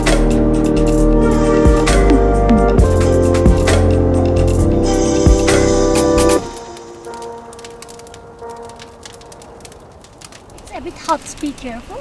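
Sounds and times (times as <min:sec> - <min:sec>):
fire crackling and popping: 0:00.0 - 0:12.0.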